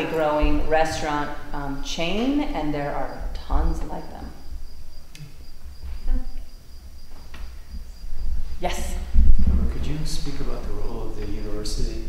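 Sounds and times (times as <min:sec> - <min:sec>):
crickets chirping: 0:00.0 - 0:12.0
low rumble of room noise: 0:00.0 - 0:12.0.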